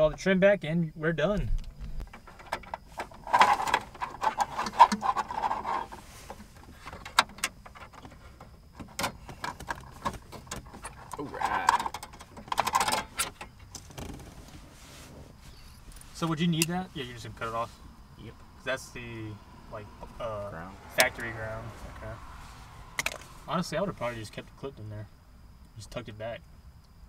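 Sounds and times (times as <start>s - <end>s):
metal and plastic clicks and knocks: 6.8s - 14.2s.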